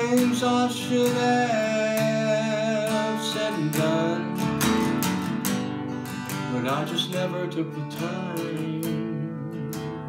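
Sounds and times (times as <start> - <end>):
person singing: 0.0 - 5.2, 6.3 - 10.0
acoustic guitar strumming: 0.0 - 10.0.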